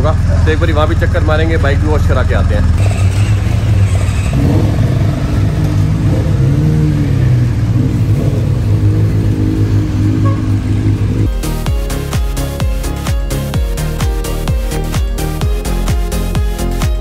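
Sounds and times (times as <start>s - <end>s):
motorcycle engines revving: 0.0s - 12.2s
electronic dance music: 11.2s - 17.0s.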